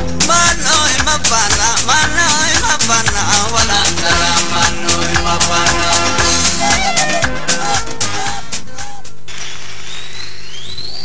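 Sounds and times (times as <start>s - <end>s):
music: 0.0s - 9.3s
audience applauding: 9.3s - 11.0s
whistles from audience: 9.3s - 11.0s.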